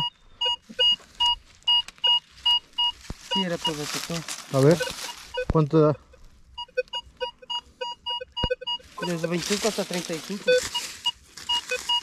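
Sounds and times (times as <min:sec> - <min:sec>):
metal detector beeping: 0:00.0 - 0:12.0.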